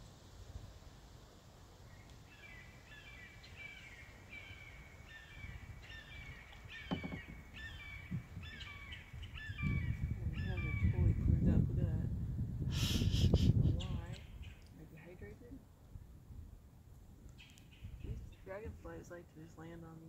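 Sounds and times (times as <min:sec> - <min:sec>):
bird harsh repeated calls: 0:02.3 - 0:10.9
single knock: 0:06.9 - 0:07.5.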